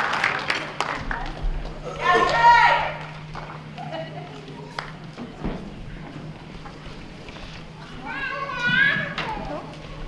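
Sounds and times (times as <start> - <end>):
indistinct children's voices: 7.2 - 10.0.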